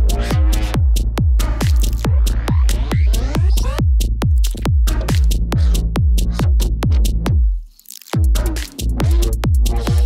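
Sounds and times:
pounding kick drum: 0.0 - 7.6, 8.2 - 10.0
rolling bassline: 0.0 - 7.6, 8.2 - 10.0
psytrance music: 0.0 - 10.0.

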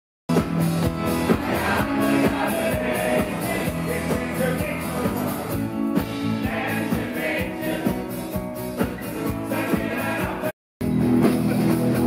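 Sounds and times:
acoustic guitar: 0.3 - 12.0
steady drum beat: 0.3 - 12.0
people singing: 1.2 - 5.5, 6.2 - 8.3, 9.0 - 10.5.

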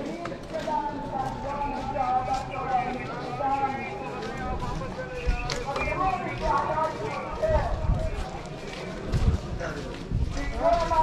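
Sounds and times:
people talking on street: 0.0 - 11.0
low thumps from walking: 7.4 - 11.0.

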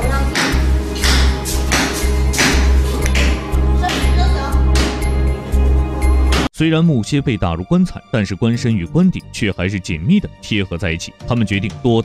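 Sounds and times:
background music with low pulse: 0.0 - 12.0
mallet knocking wooden wedges: 0.3 - 4.1.

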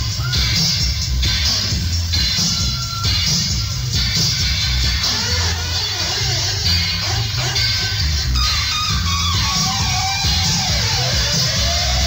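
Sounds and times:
heavy pulsing bass line: 0.0 - 12.0
reggae on sound system: 0.0 - 12.0.

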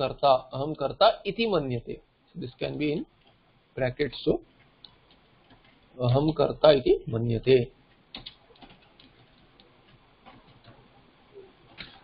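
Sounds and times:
keyboard keystrokes: 8.1 - 10.8.

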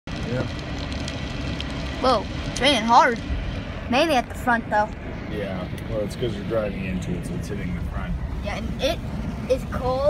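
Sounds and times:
ticks of raindrops: 0.1 - 5.1
hard rain on a car: 0.1 - 10.0
road noise rumble: 0.1 - 10.0.

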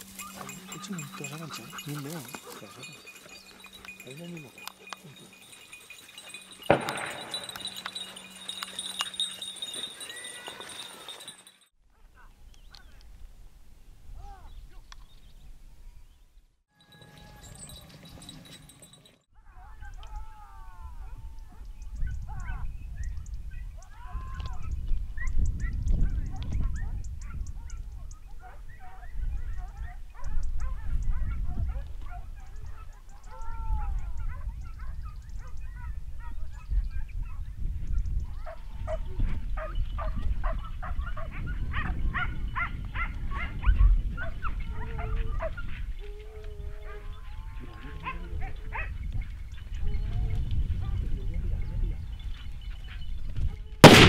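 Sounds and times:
dogs barking and yelping: 0.0 - 12.4, 21.0 - 23.9, 24.6 - 51.8
wind rumble on microphone: 19.8 - 54.0.

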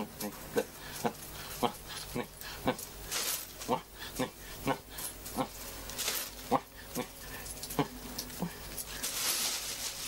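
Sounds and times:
man muttering: 0.0 - 3.0, 3.6 - 5.7, 6.4 - 8.7
plastic bag rustling: 3.0 - 3.8, 5.6 - 6.6, 7.4 - 10.0.

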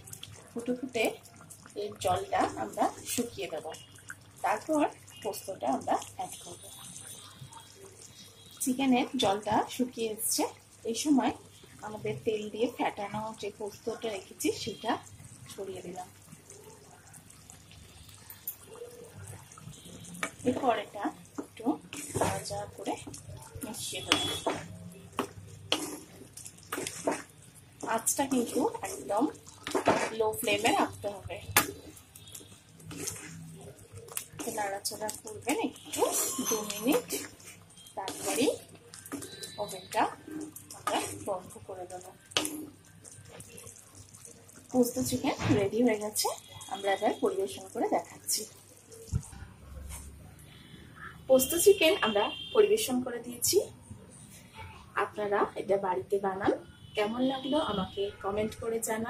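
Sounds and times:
gravy bubbling in a wok: 0.0 - 59.0.

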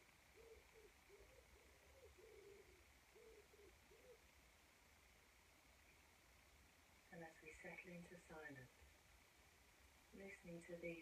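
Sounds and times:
pigeon cooing: 0.0 - 4.3.

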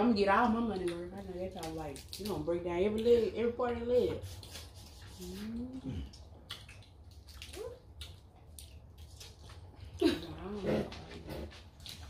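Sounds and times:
lips sucking and smacking: 4.3 - 9.8.

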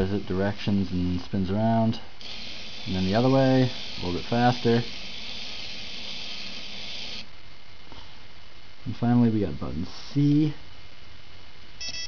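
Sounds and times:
small motors whirring: 2.2 - 7.3.

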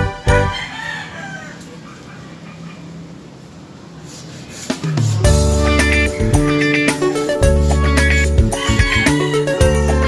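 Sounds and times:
faint bird calls: 1.5 - 3.2.

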